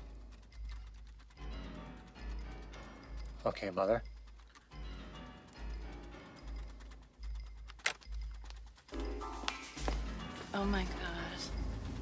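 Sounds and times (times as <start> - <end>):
computer keyboard clicking: 0.0 - 9.2.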